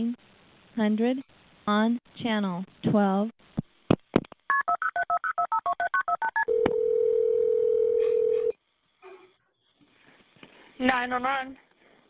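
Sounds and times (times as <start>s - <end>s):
touch-tone dialing beeps: 4.5s - 8.3s
steady telephone tone: 6.0s - 8.5s.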